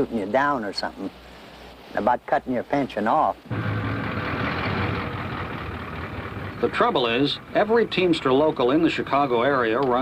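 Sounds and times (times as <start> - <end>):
truck engine running: 3.5 - 9.6.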